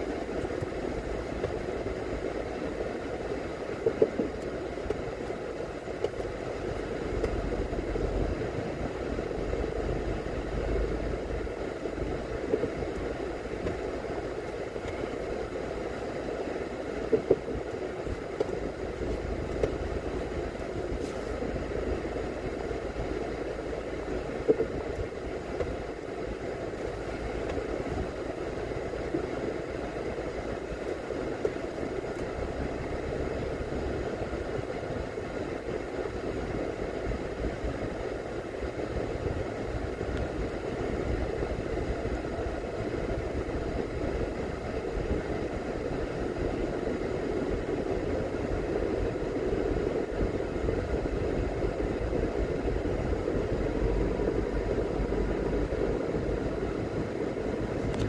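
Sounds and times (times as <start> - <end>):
car driving slowly: 0.0 - 58.0.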